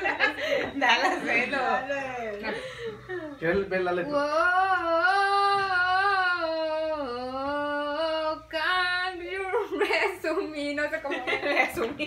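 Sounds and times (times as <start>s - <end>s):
woman singing slow melody: 4.1s - 9.8s.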